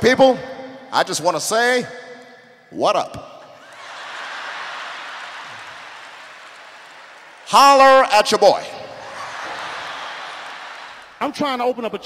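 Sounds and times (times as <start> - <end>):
audience applauding and cheering: 3.6 - 11.4.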